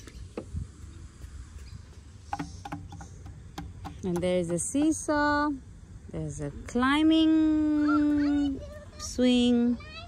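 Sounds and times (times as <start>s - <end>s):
taps on percussion pads: 2.3s - 5.0s.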